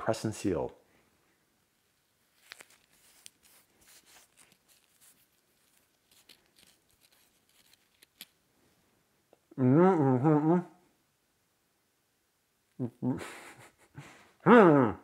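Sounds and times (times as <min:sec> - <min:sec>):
adhesive tape rustling: 0:01.8 - 0:08.4.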